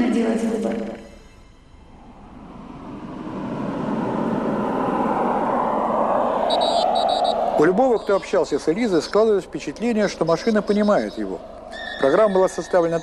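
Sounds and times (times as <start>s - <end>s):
rushing noise: 1.6s - 8.4s.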